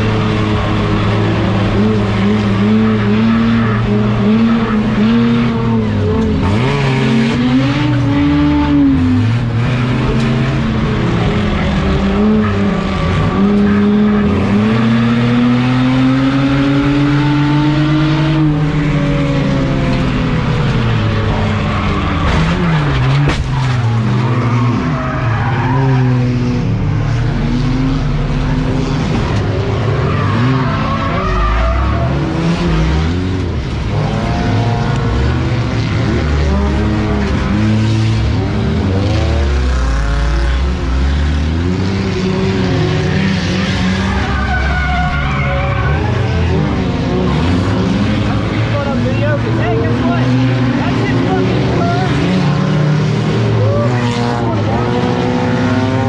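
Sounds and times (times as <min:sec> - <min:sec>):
race car engine revving: 0:00.0 - 0:56.0
tire squeal: 0:21.4 - 0:26.3, 0:29.7 - 0:32.4, 0:43.4 - 0:47.5
car crash impact: 0:22.2 - 0:23.9.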